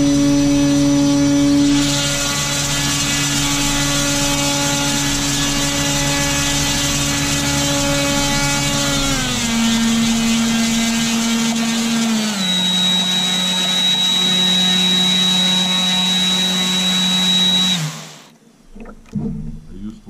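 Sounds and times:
motor propeller humming drone: 0.0s - 19.9s
thin high whine: 12.3s - 18.3s.

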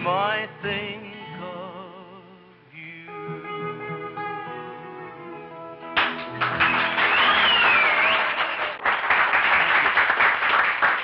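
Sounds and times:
audience applauding: 6.0s - 11.0s
gliding whistle: 6.7s - 8.7s.

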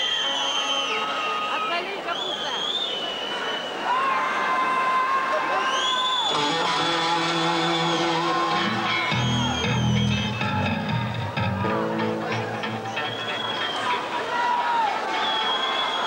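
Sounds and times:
crowd noise: 0.0s - 16.0s
low bass notes: 6.4s - 13.2s
rock band playing live: 6.5s - 13.8s.

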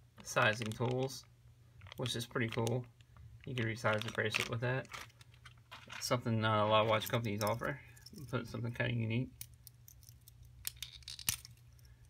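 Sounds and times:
faint low hum: 0.0s - 12.0s
small objects clicking: 9.4s - 12.0s.

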